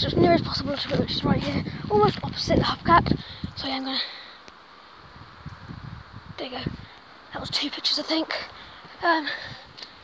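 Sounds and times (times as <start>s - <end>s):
faint outdoor background hiss: 0.0s - 10.0s.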